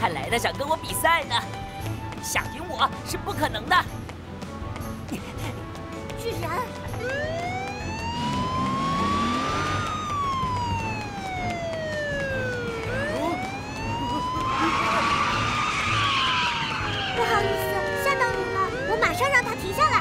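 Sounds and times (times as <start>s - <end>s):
police siren wailing: 7.0s - 20.0s
rushing noise: 12.5s - 19.9s.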